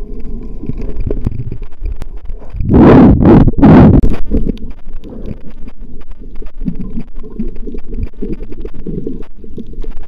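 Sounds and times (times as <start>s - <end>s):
underwater rumble and sloshing: 0.0s - 10.0s.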